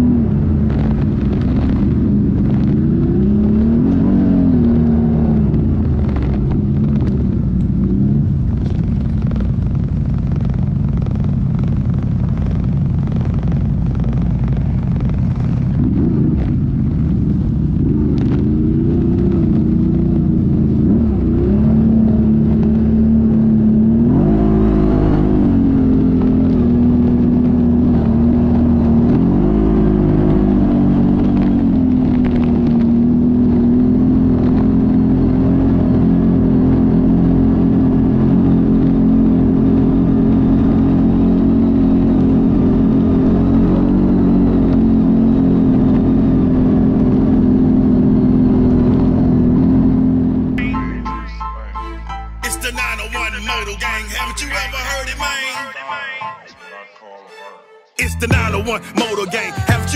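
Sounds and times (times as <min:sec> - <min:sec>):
atv engine revving: 0:00.0 - 0:51.0.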